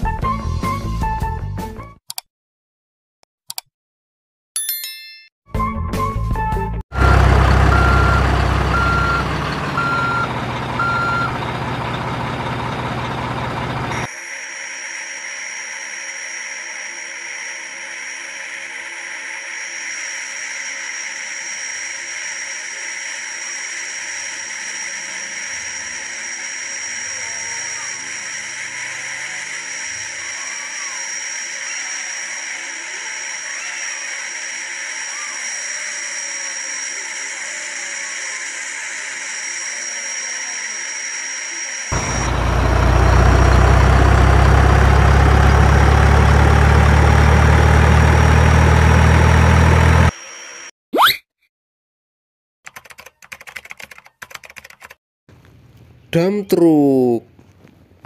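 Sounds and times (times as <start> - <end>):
truck engine running: 6.9 - 14.1, 41.9 - 50.1
reversing alarm beeping: 7.0 - 11.5, 39.3 - 43.8
hydraulic hiss with high whine: 14.3 - 42.4.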